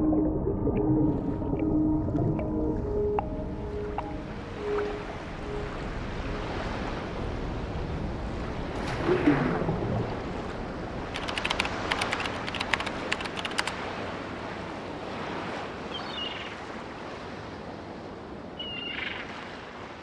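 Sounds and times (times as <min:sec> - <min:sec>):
wind: 0:01.3 - 0:20.0
waves: 0:02.3 - 0:20.0
sharp clicks: 0:11.1 - 0:13.8.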